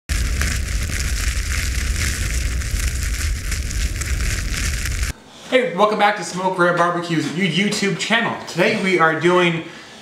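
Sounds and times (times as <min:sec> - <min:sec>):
fire crackling and hissing: 0:00.0 - 0:05.2
deep steady rumble: 0:00.1 - 0:05.1.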